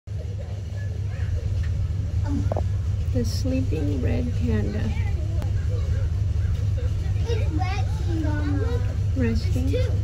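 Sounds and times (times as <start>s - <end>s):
faint distant voices: 0.1s - 10.0s
low rumble: 0.1s - 10.0s.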